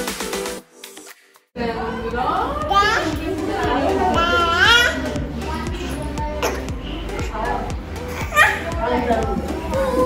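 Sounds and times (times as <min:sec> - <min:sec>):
adults' voices: 0:01.6 - 0:10.0
toddler's voice: 0:02.7 - 0:03.2, 0:04.0 - 0:07.4, 0:08.1 - 0:08.8.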